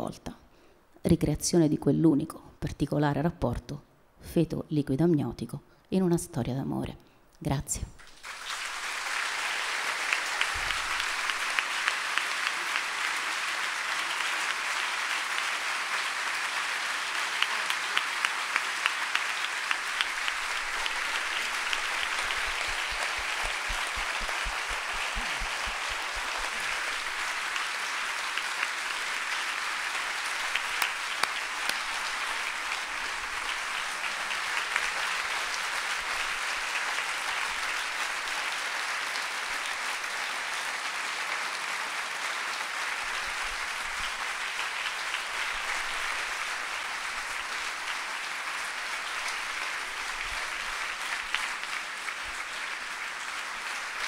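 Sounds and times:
large audience applauding: 8.0s - 54.0s.

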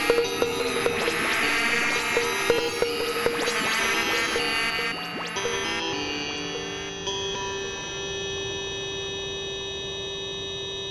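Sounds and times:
electronic tone drone: 0.0s - 10.9s.

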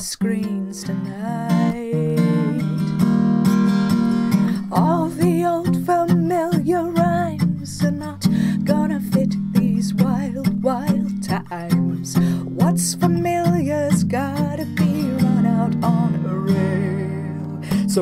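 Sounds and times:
woman singing: 0.0s - 3.0s, 4.3s - 18.0s
acoustic guitar strumming: 0.0s - 18.0s.

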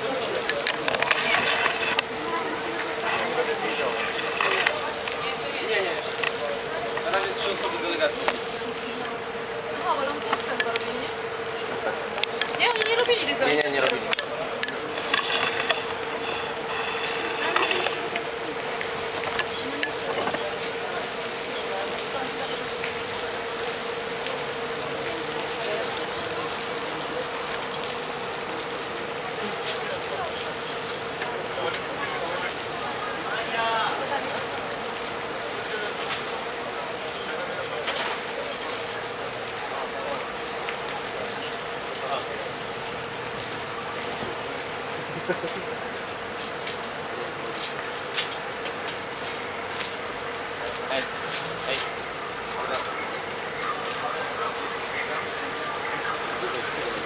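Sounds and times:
faint indistinct voices: 0.0s - 57.0s
mid-pitched hum: 0.0s - 57.0s.

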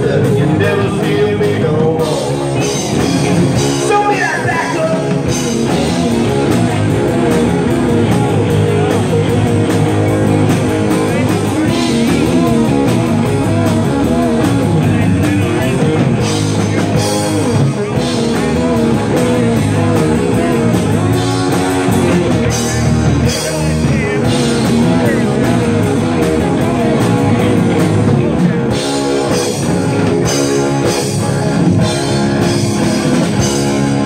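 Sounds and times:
drum kit: 0.0s - 34.0s
electric guitars: 0.0s - 34.0s.

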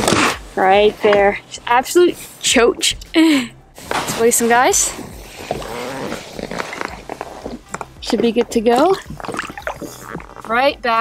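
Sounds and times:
water splashes: 6.6s - 10.6s.

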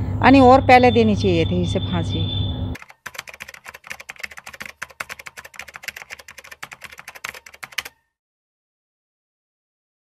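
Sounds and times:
rapid keyboard key clicks: 2.8s - 8.0s.

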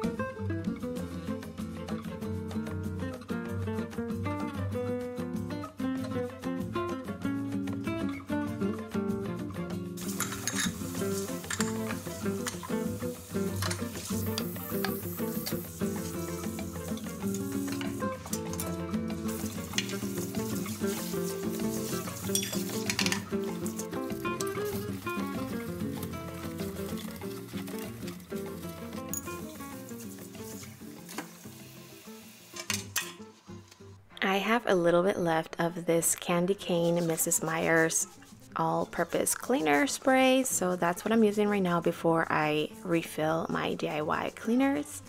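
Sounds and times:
guitar-led instrumental music: 0.0s - 35.4s
tap water hissing: 10.0s - 33.0s
dishes clattering in sink: 10.1s - 12.7s, 22.3s - 23.3s.

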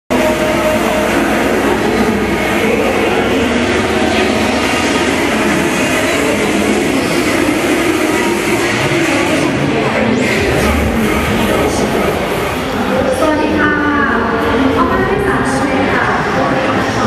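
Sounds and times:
busy exhibition hall din: 0.1s - 17.0s.

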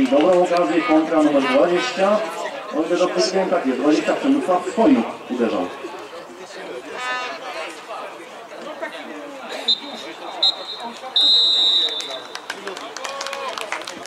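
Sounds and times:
referee's whistle: 9.5s - 12.4s.

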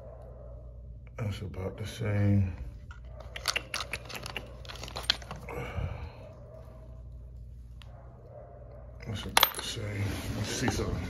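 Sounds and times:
screwdriver bits clicking and rattling: 2.9s - 5.5s.

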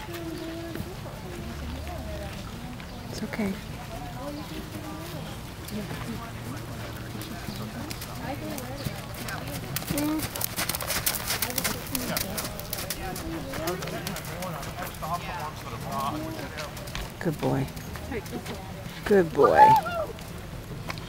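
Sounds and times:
horse hoofbeats on sand: 0.0s - 21.0s.

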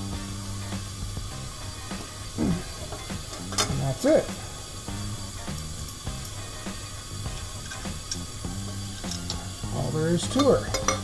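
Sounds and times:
steady low hum: 0.0s - 11.0s
metal tool clicking and rattling: 9.0s - 9.4s, 10.3s - 11.0s.

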